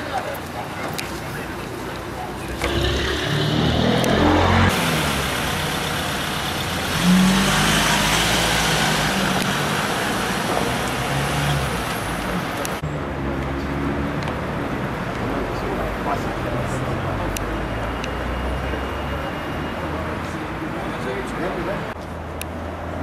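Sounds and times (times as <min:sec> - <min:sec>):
van engine running: 0:02.6 - 0:10.9.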